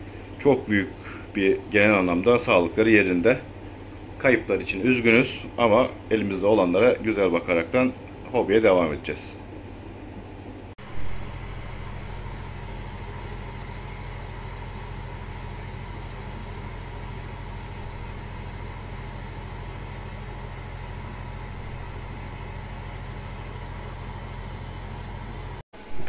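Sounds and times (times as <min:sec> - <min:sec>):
aquarium air pump humming: 0:00.0 - 0:26.0.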